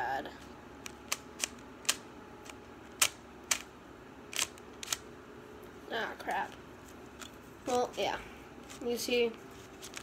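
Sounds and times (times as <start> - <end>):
puzzle cube clicking: 0.8 - 3.7, 4.3 - 5.0.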